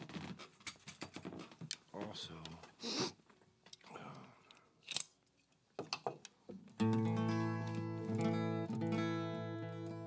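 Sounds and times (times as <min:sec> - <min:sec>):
clicks knocks and scrapes: 0:00.0 - 0:01.9.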